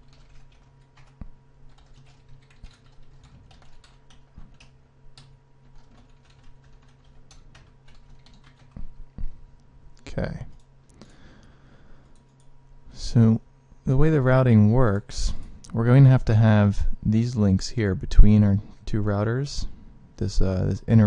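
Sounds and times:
computer keyboard typing: 0:00.0 - 0:08.9, 0:12.0 - 0:12.5
faint steady hum: 0:00.0 - 0:21.0.

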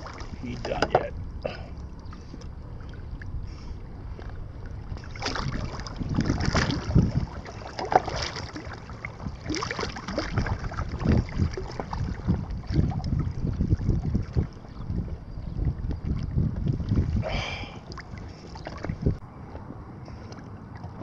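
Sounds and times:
water lapping around boat: 0:00.0 - 0:21.0
wind buffeting microphone: 0:00.0 - 0:21.0.

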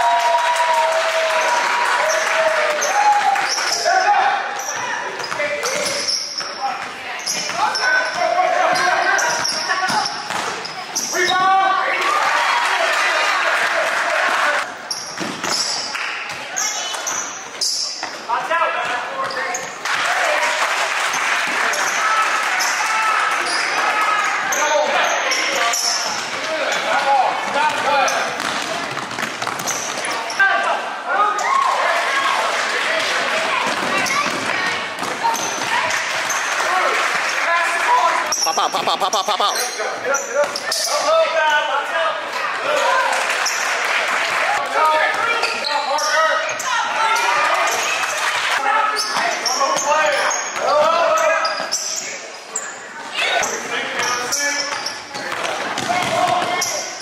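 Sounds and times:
spectators' voices: 0:30.8 - 0:40.8.

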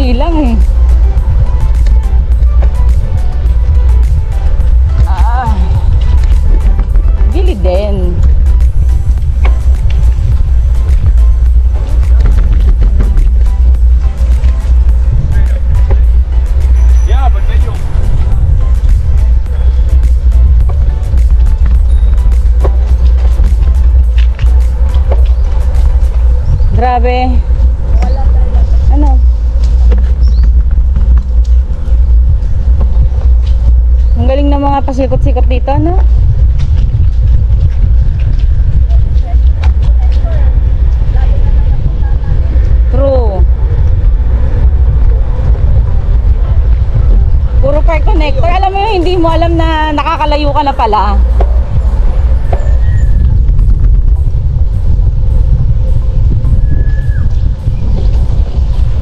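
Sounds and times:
music playing: 0:00.0 - 0:59.0
wind rumble on microphone: 0:00.0 - 0:59.0.

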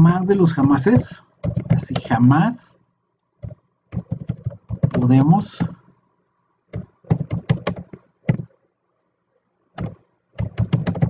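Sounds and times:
typing on computer keyboard: 0:00.7 - 0:02.1, 0:03.4 - 0:05.8, 0:06.7 - 0:08.5, 0:09.8 - 0:11.0.

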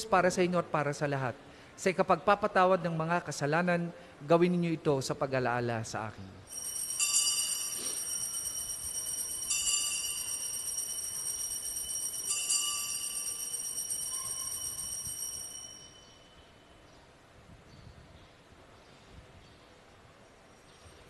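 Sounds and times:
altar bells ringing: 0:06.5 - 0:16.4.

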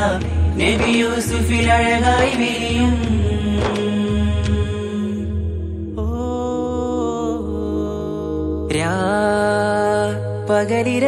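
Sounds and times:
low bass accompaniment: 0:00.0 - 0:09.4
person singing sustained notes: 0:00.0 - 0:11.0.

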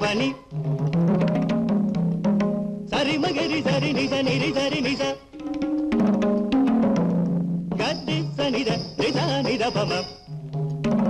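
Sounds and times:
person singing: 0:00.0 - 0:00.5, 0:02.9 - 0:05.3, 0:07.8 - 0:10.3
sharp hand drum strokes: 0:00.5 - 0:11.0.

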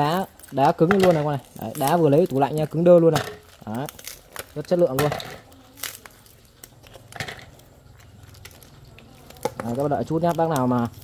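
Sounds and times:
ice cubes cracking loose: 0:00.0 - 0:11.0.

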